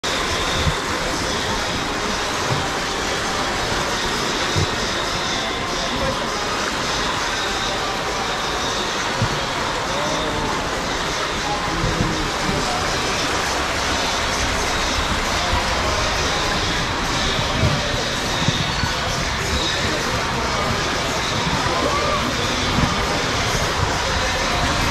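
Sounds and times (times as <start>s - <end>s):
water rushing down a tube: 0.0s - 24.9s.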